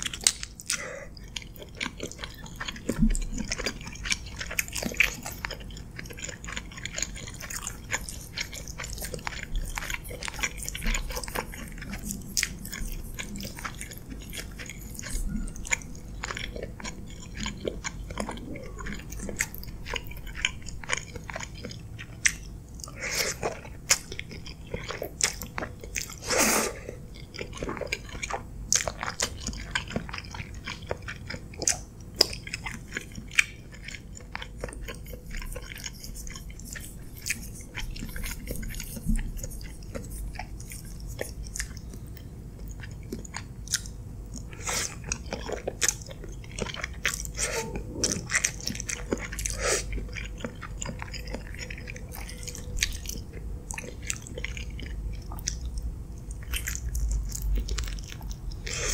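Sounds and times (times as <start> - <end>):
close chewing with mouth smacks: 0.0 - 58.9.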